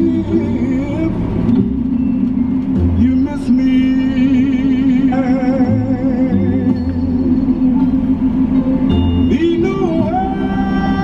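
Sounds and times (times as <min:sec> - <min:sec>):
car road noise: 0:00.0 - 0:11.0
song on car stereo: 0:00.0 - 0:11.0.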